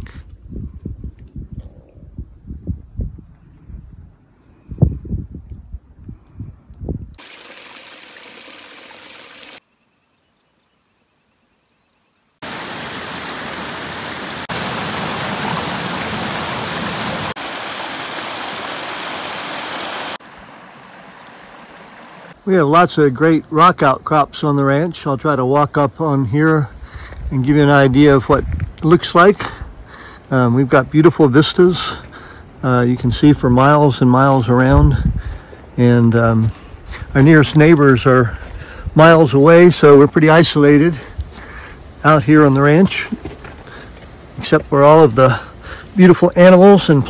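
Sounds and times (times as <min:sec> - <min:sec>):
wind buffeting microphone: 0:00.0 - 0:07.2, 0:26.9 - 0:28.8, 0:34.6 - 0:35.5
creek water running over rocks: 0:07.2 - 0:09.6, 0:12.4 - 0:22.4.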